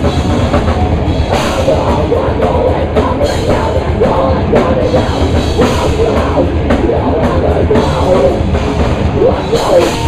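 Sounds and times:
distorted electric guitar: 0.0 - 10.0
fast drumming: 0.0 - 10.0.

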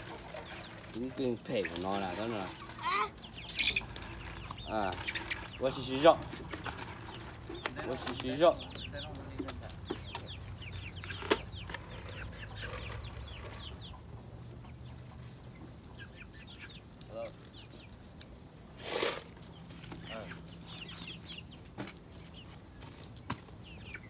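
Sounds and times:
chicks peeping: 0.0 - 24.0.

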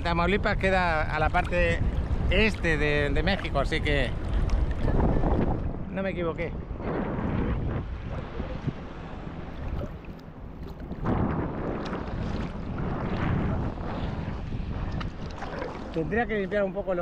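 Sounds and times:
wind buffeting microphone: 0.0 - 17.0
sea water sloshing and lapping: 0.6 - 5.9, 7.8 - 16.8.

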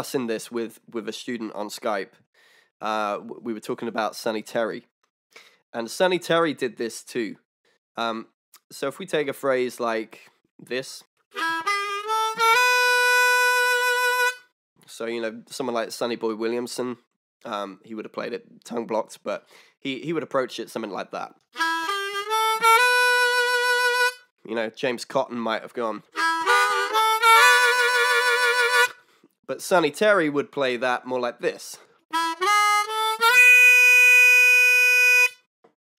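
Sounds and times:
blues harmonica playing: 11.3 - 14.5, 21.6 - 24.2, 26.1 - 29.1, 32.1 - 35.5.

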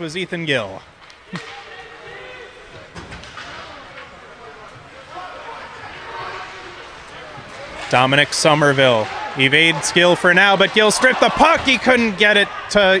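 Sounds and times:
faint spectator and player voices: 1.1 - 13.0.

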